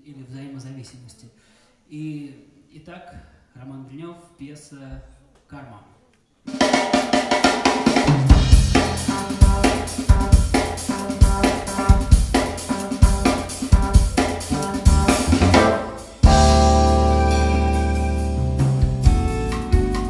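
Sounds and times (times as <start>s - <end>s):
drum kit busy beat: 6.5s - 20.0s
electric bass notes: 8.1s - 20.0s
keyboard: 8.2s - 20.0s.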